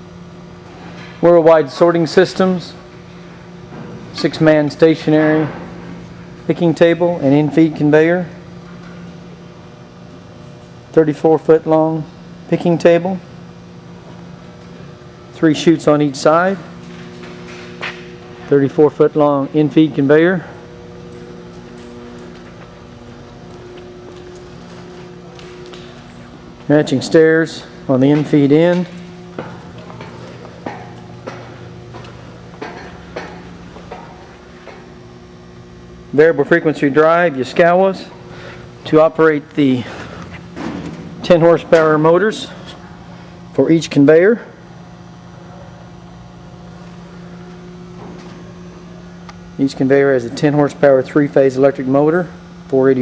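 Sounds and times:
low mechanical hum: 0.0s - 53.0s.

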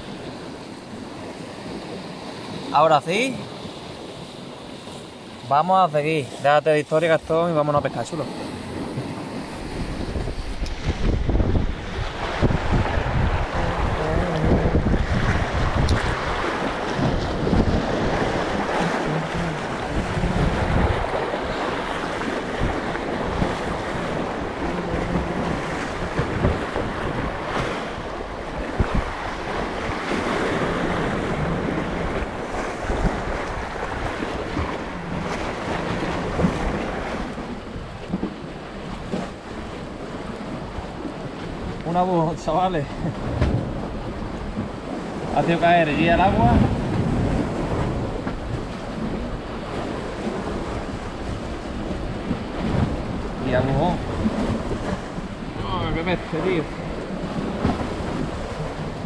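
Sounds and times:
sea waves breaking on concrete: 0.0s - 59.0s
wind buffeting microphone: 7.0s - 59.0s.

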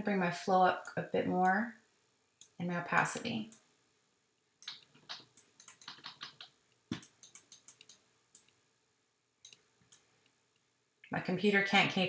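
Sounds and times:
computer mouse clicks: 4.6s - 8.6s.

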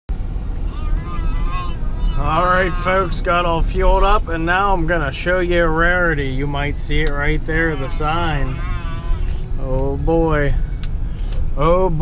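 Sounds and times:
car engine and tyre rumble: 0.1s - 12.0s.

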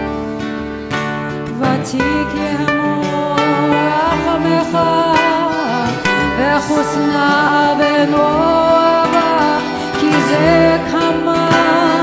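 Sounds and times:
acoustic guitar: 0.0s - 12.0s
voices singing slow melody: 1.5s - 12.0s.

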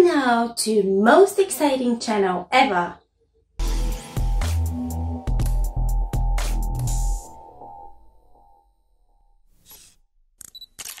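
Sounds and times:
camera shutter clicks: 10.4s - 11.0s.

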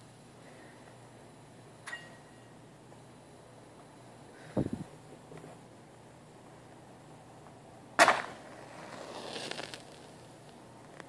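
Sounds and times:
match striking and flaring: 8.0s - 10.6s.

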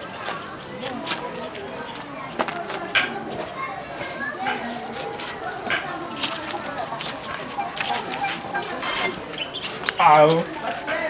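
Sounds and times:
children playing: 0.0s - 11.0s.

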